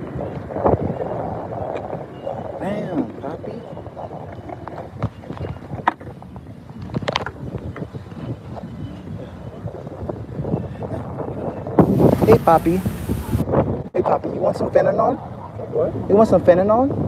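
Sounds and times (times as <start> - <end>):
wind buffeting microphone: 0.0 - 17.0
skateboard wheels rolling on concrete: 11.8 - 13.5.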